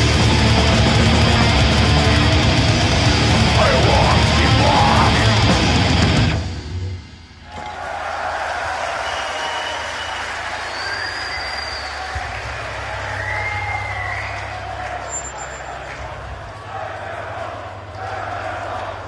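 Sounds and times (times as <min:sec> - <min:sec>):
crowd cheering and shouting: 0:00.0 - 0:06.5, 0:07.4 - 0:19.0
whistles: 0:08.9 - 0:16.0.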